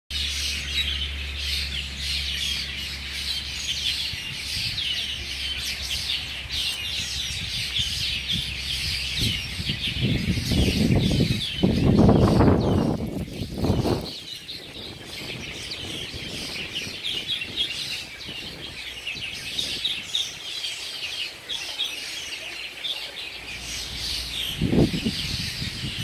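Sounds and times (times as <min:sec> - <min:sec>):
small birds chirping: 0:00.1 - 0:26.0
loud rumbling noise: 0:23.4 - 0:26.0.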